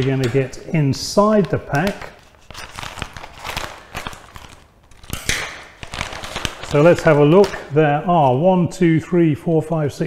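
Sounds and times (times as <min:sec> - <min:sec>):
plastic bag crinkling: 0:00.0 - 0:07.8
scissors snipping plastic bag: 0:01.3 - 0:07.7.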